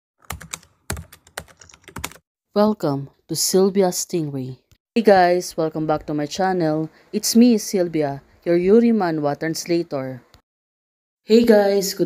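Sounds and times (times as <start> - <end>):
computer keyboard typing: 0.2 - 2.2.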